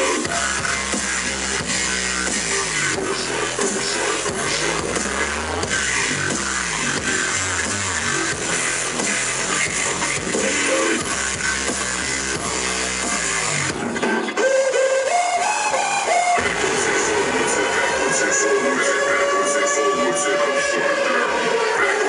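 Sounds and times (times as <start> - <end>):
pulsing bass lines: 0.0 - 14.0, 15.3 - 22.0
live dubstep through concert pa: 0.0 - 22.0
high synth line: 14.3 - 22.0.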